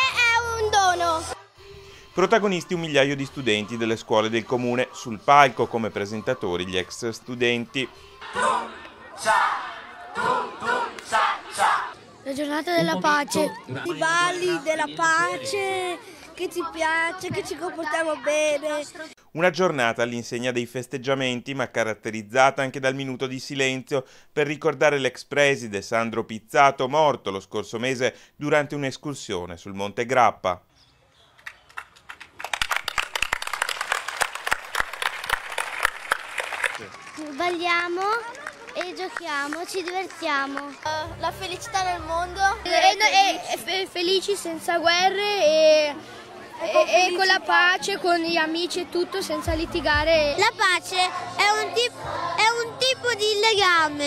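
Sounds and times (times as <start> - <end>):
voices: 0.0 - 19.2, 36.8 - 54.0
children shouting together: 8.2 - 19.2
children clapping: 31.4 - 41.0.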